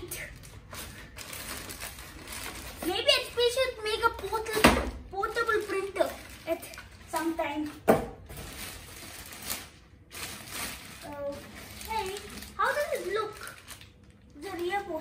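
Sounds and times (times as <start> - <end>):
boy's voice: 0.0 - 0.4, 2.8 - 7.8, 11.0 - 13.7, 14.3 - 15.0
polystyrene and plastic bag rustling: 0.0 - 15.0.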